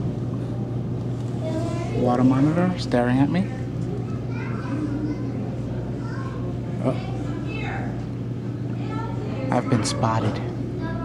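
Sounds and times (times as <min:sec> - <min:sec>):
background chatter: 0:00.4 - 0:11.0
children's voices: 0:01.3 - 0:02.2, 0:03.6 - 0:11.0.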